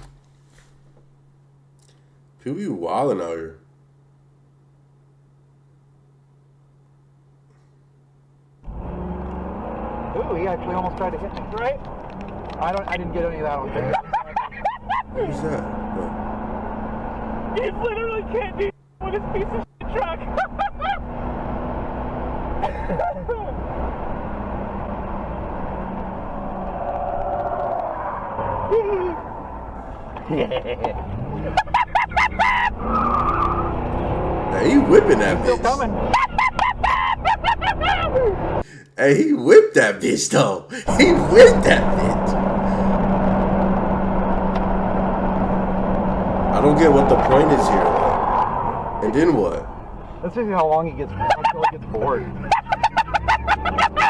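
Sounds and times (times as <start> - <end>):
car engine and road noise: 0.0 - 2.4, 8.0 - 38.7, 40.9 - 54.0
people laughing: 13.6 - 16.1, 20.3 - 21.1, 22.6 - 23.6, 30.1 - 32.9, 34.6 - 38.6, 40.7 - 42.2, 51.1 - 54.0.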